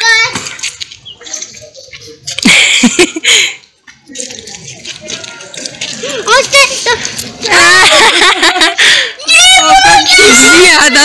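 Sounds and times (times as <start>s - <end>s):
faint indistinct voices: 0.0s - 8.0s.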